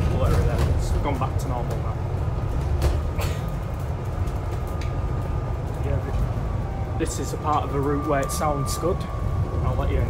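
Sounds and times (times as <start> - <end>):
bus engine rumbling: 0.0 - 10.0
faint steady whine: 3.5 - 10.0.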